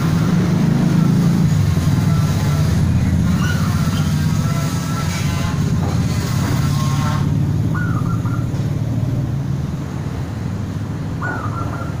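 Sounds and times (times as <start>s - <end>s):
dove cooing: 7.7s - 8.6s, 11.2s - 12.0s.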